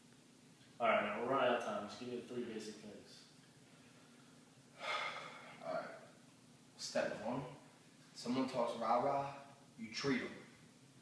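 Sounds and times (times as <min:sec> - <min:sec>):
man's sharp gasp: 0:04.8 - 0:05.6.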